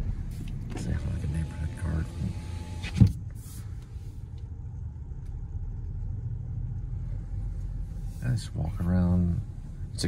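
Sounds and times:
car rolling rumble inside cabin: 0:00.0 - 0:10.0.

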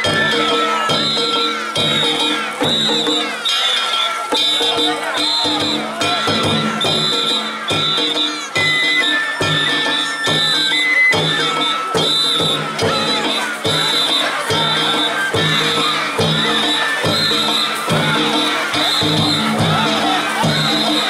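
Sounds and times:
crowd shouting: 0:00.0 - 0:21.0
drum beats: 0:00.0 - 0:21.0.

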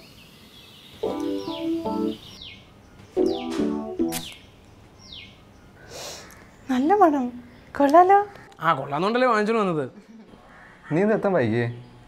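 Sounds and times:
falling bird chirp: 0:00.0 - 0:07.7
piano music: 0:01.0 - 0:02.4, 0:03.2 - 0:04.3.

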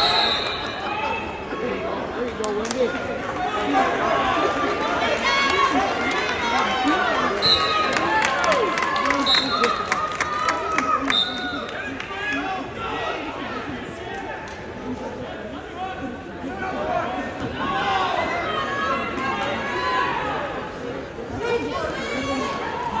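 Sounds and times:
spectators and coaches shouting: 0:15.8 - 0:23.0.

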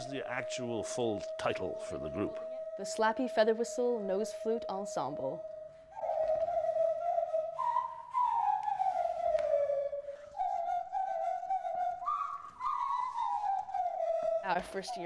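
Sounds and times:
nose flutes playing slow melody: 0:00.0 - 0:15.0.

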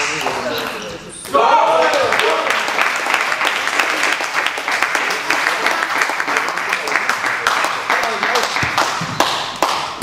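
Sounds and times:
applause echoing in a hall: 0:01.7 - 0:10.0.

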